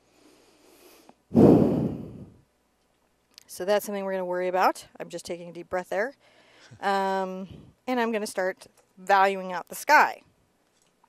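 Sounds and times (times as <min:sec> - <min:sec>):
woman breathing deeply: 0:00.0 - 0:02.4, 0:06.2 - 0:06.8.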